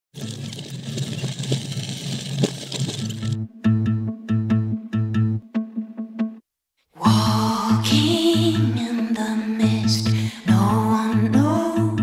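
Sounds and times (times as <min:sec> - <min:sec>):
sea ice cracking against kayak hull: 0:00.1 - 0:03.4.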